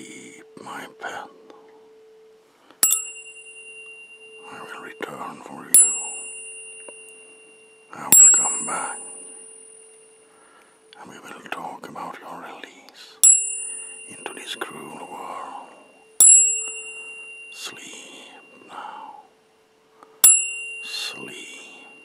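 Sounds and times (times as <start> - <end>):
tuning forks struck: 0.0 - 11.7, 13.2 - 19.4, 20.0 - 22.0
low steady tone: 0.0 - 22.0.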